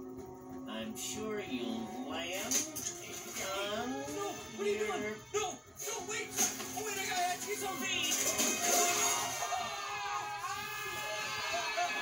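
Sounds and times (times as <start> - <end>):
background music score: 0.0 - 12.0
character's voice from television: 0.6 - 9.2.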